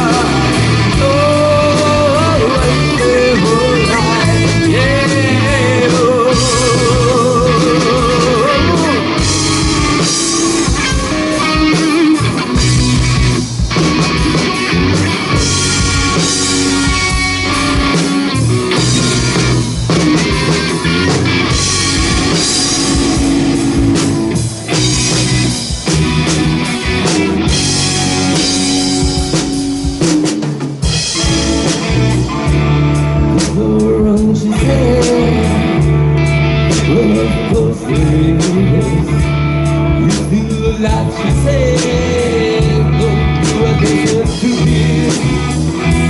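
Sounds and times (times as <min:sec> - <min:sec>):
rock music with guitar and drums: 0:00.0 - 0:46.0.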